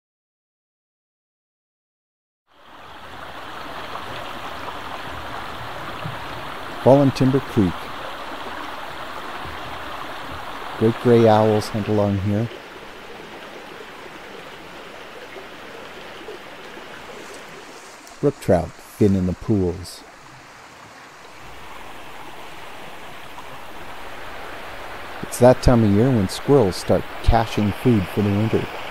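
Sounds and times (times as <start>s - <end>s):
creek water rushing: 2.5s - 28.9s.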